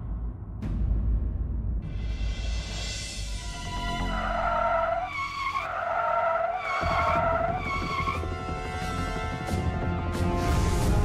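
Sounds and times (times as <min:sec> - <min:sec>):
car tyres screeching: 0:03.5 - 0:08.3.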